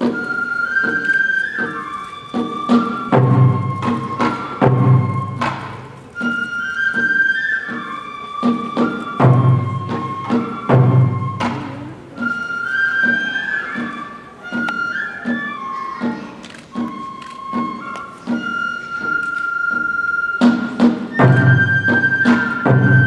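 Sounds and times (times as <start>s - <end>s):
bamboo flute melody: 0.0s - 23.0s
drum strikes: 2.7s - 6.3s, 8.4s - 12.2s, 20.4s - 23.0s
deep heavy drum beats: 3.1s - 6.0s, 9.2s - 12.2s.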